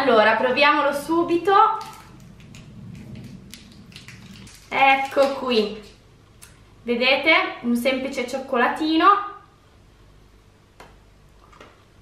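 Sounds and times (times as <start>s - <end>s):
low room hum: 0.0s - 12.0s
wrapper rustling and crackling: 1.8s - 6.0s.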